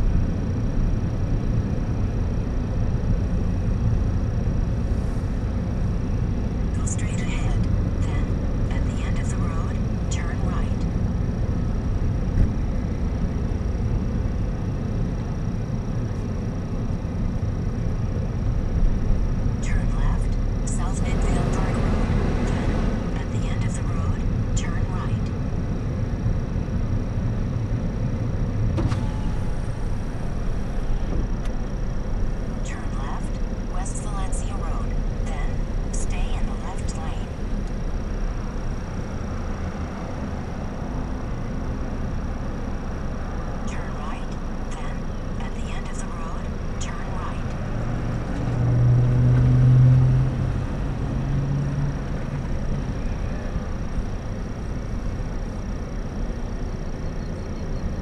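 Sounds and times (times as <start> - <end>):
car engine and tyres rumbling: 0.0 - 58.0.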